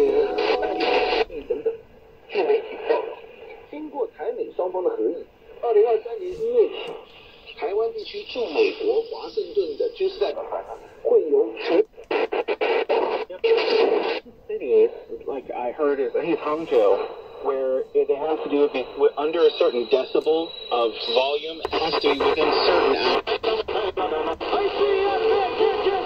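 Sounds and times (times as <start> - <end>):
radio crackles: 0.0 - 26.0
shortwave radio voices: 0.0 - 26.0.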